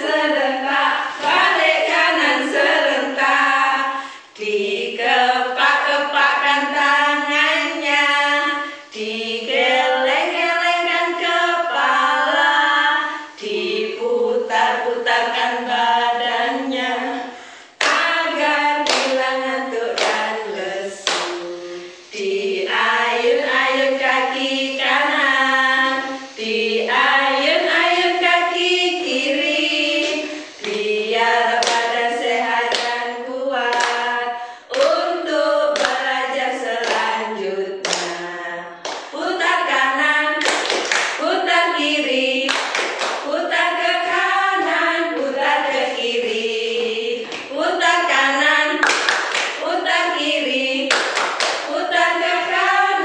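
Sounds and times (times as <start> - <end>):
voices singing children's song: 0.0 - 53.0
hand claps: 17.8 - 18.1, 18.8 - 19.3, 19.9 - 20.3, 21.0 - 21.5, 31.6 - 32.0, 32.7 - 33.0, 33.6 - 34.1, 34.7 - 35.0, 35.8 - 36.2, 36.8 - 37.1, 37.8 - 38.2, 38.8 - 39.2, 40.4 - 41.2, 42.5 - 43.3, 47.2 - 47.6, 48.8 - 49.6, 50.9 - 51.7.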